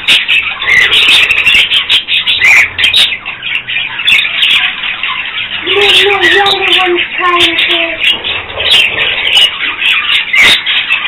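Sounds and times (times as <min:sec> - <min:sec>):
budgerigars chattering: 0:00.0 - 0:11.0.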